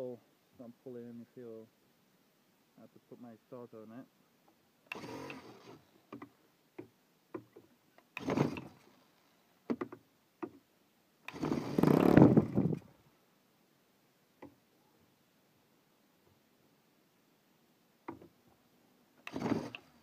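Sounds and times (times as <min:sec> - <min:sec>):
electric starter spinning engine: 0:04.9 - 0:05.8, 0:08.2 - 0:08.7, 0:11.3 - 0:12.6, 0:19.3 - 0:19.9.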